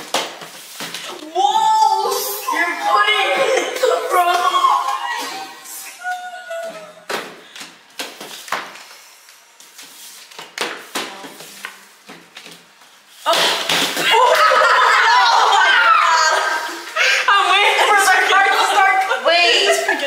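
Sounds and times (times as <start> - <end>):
people shouting and shrieking: 1.2 - 7.1, 13.3 - 19.7.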